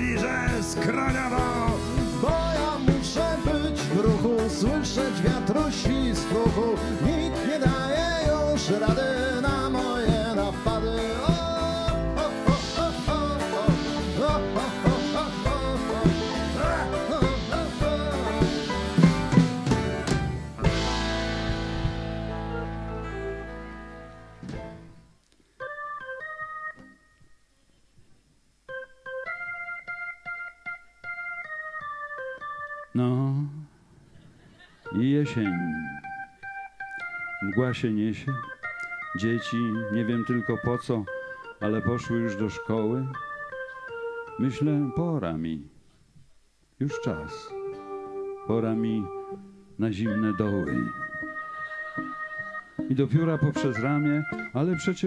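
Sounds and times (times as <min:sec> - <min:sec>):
plucked guitar notes: 0:00.0 - 0:25.1, 0:50.0 - 0:55.0
electric keyboard chords: 0:00.0 - 0:27.4, 0:28.7 - 0:33.7, 0:34.8 - 0:45.2, 0:46.8 - 0:55.0.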